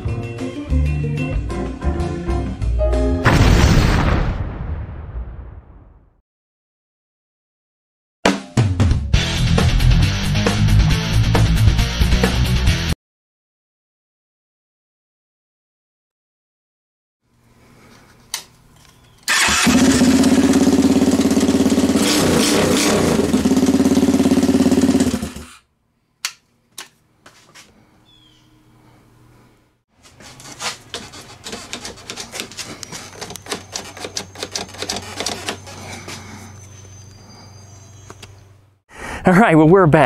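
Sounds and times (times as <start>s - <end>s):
fast engine ticking: 19.3s - 25.5s
minibike engine running: 19.3s - 25.6s.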